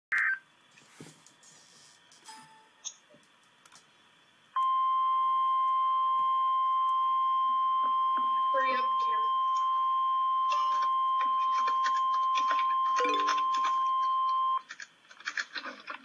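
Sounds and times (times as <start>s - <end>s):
steady alarm tone: 4.6s - 14.6s.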